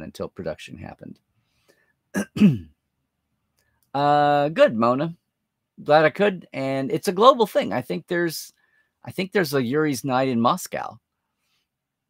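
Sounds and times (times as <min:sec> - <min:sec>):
man clearing his throat: 0:02.2 - 0:02.8.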